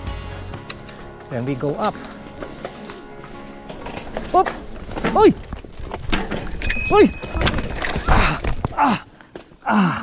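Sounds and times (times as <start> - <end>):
bike clattering as it falls: 3.6 - 9.6.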